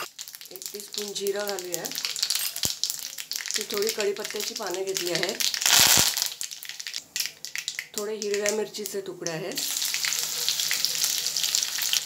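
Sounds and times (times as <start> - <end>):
seeds popping in hot oil: 0.0 - 9.0.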